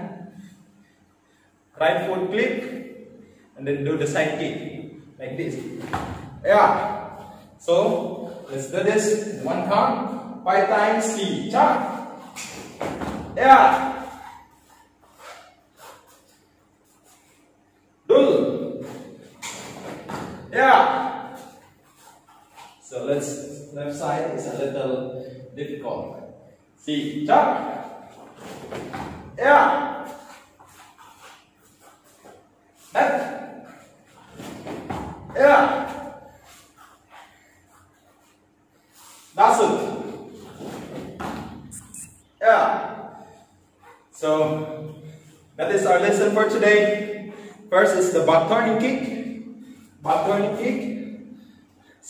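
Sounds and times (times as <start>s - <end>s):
man shouting: 13.4s - 14.3s, 29.4s - 30.1s, 33.0s - 33.6s, 35.3s - 36.2s.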